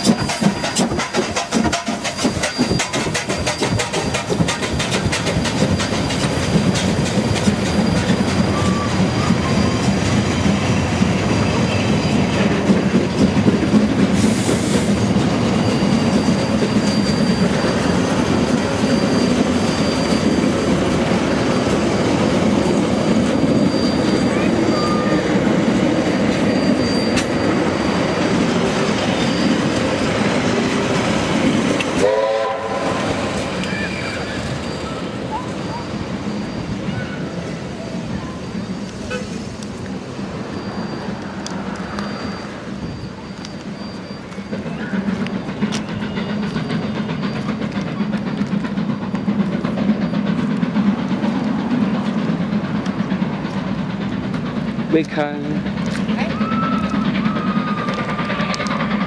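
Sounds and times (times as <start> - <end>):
train wheels clattering over rail joints: 0.0 - 59.0.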